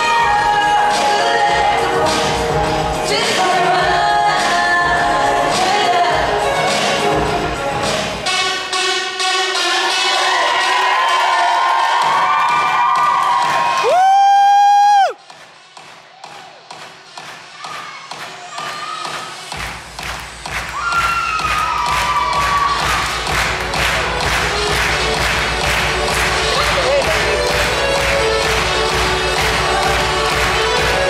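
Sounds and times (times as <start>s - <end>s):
dance music: 0.0s - 31.0s
audience cheering: 9.8s - 15.2s, 20.7s - 23.4s.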